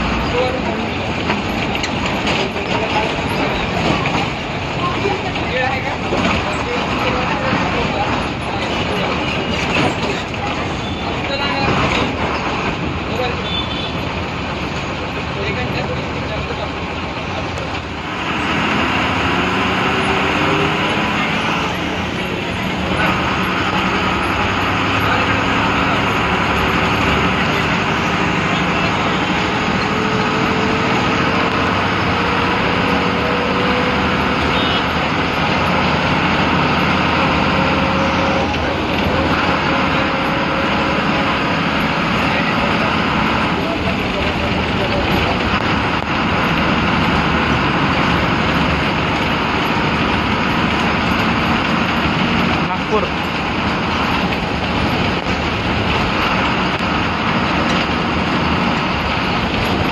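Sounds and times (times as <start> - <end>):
bus diesel engine: 0.0 - 59.9.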